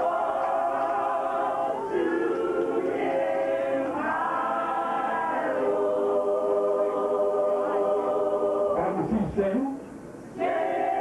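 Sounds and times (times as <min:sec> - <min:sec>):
a cappella gospel choir singing: 0:00.0 - 0:09.0, 0:10.3 - 0:11.0.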